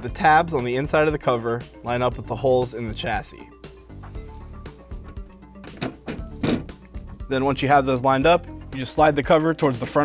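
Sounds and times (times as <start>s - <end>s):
background music: 0.0s - 10.0s
metal cover thunks: 5.6s - 6.8s.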